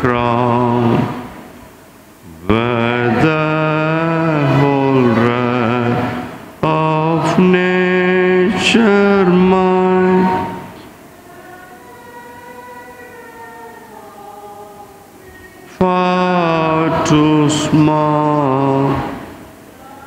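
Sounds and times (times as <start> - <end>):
man singing a hymn: 0.0 - 1.5, 2.3 - 20.0.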